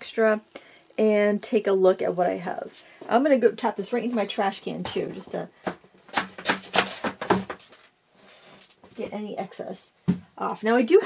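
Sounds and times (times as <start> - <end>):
board knocking against trash can: 6.1 - 7.6.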